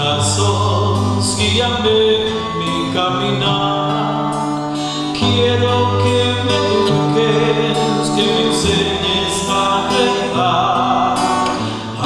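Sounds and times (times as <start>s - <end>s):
acoustic guitar: 0.0s - 12.0s
man singing a hymn: 0.0s - 12.0s.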